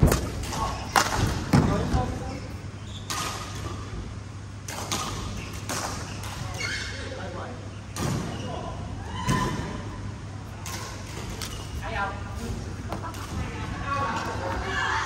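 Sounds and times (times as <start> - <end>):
steady low hum: 0.0 - 15.0
rackets hitting shuttlecock: 4.6 - 6.6.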